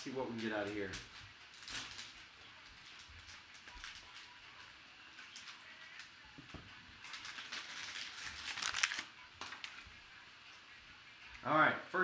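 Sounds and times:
foil card pack crinkling: 0.4s - 6.1s, 7.0s - 9.8s.

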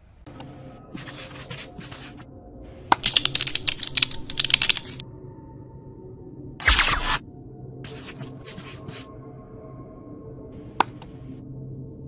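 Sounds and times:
marker pen scratching on whiteboard: 1.0s - 2.2s, 7.9s - 9.1s.

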